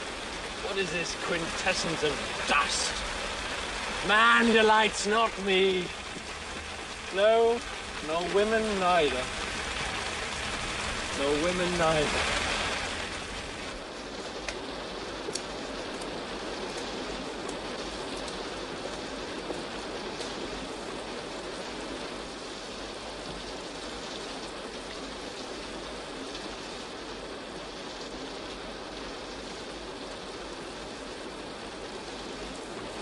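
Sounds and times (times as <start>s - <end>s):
steady rainfall: 0.0s - 33.0s
drip ticks: 15.3s - 16.1s.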